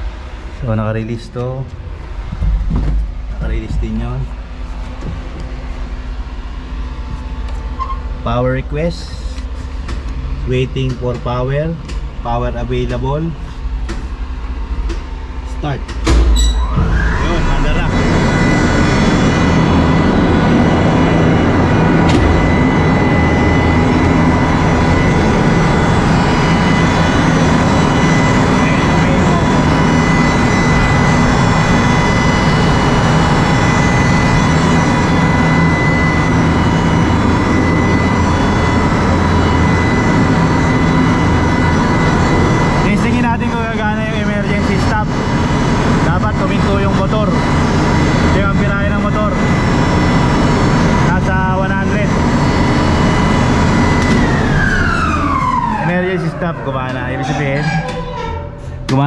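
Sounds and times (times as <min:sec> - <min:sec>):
crane motor and pump humming: 0:00.0 - 0:59.0.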